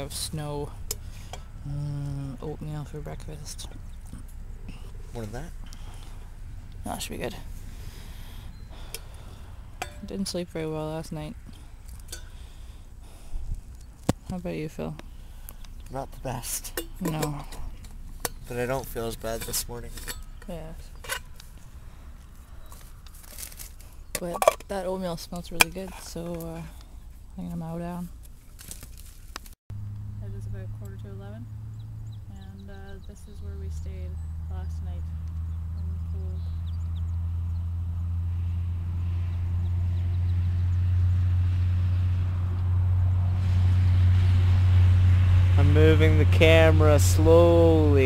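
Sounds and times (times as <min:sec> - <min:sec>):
low background rumble: 0:00.0 - 0:48.0
scraping rustle: 0:17.5 - 0:24.1, 0:25.9 - 0:29.6
low mechanical motor hum: 0:29.8 - 0:48.0.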